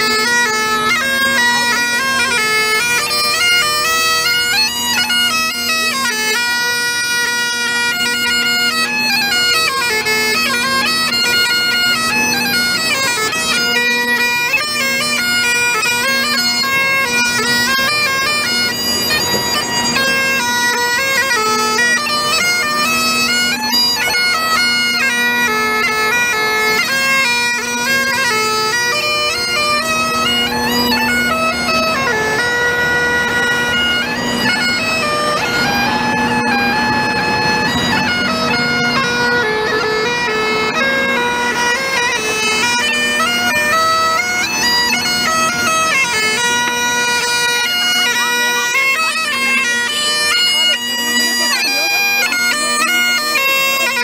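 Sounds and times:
bagpipes playing: 0.0s - 54.0s.

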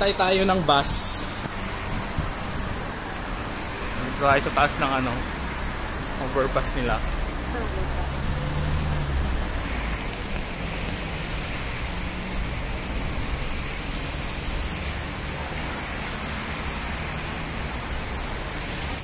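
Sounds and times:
steady outdoor hiss: 0.0s - 19.0s.

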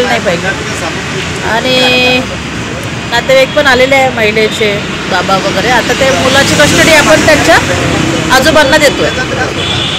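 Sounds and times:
street traffic noise: 0.0s - 9.9s
woman speaking: 1.4s - 2.3s.

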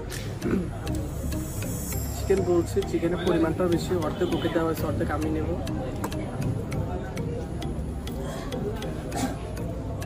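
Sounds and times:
murmur of voices: 0.0s - 10.0s
steady ticking: 0.0s - 10.0s.

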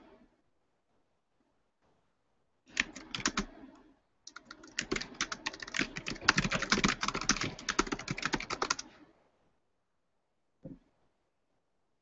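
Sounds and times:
typing on computer keyboard: 2.7s - 3.5s, 4.3s - 8.9s.

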